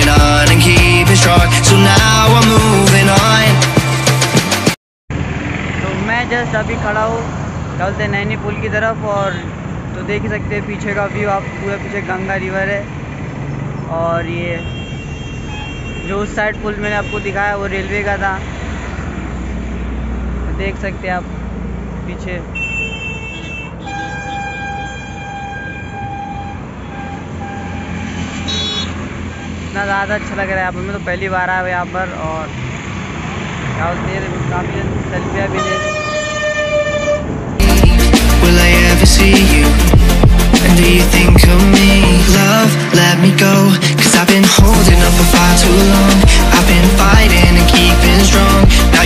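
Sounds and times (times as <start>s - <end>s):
road traffic on a bridge: 0.1s - 49.0s
man speaking: 5.8s - 12.9s, 16.0s - 18.4s, 29.8s - 32.5s, 33.8s - 35.9s
horn long steady note: 35.6s - 38.4s.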